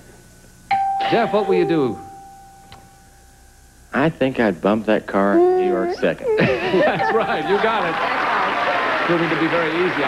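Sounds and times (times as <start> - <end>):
person speaking: 4.4 - 7.6.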